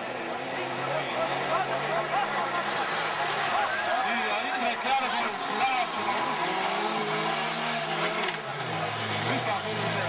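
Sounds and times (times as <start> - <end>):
racing engines droning: 0.0 - 10.0.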